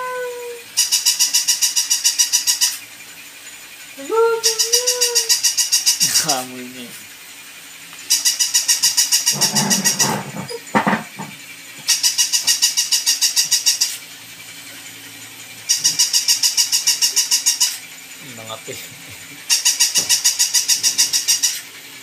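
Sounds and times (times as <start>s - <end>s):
toy dog electronic beeping yaps: 0.0s - 2.8s, 4.2s - 6.2s, 8.1s - 10.6s, 11.9s - 14.0s, 15.7s - 17.8s, 19.5s - 21.6s.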